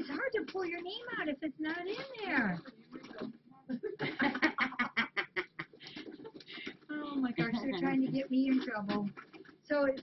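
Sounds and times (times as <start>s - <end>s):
woman laughing hard: 4.0s - 6.3s.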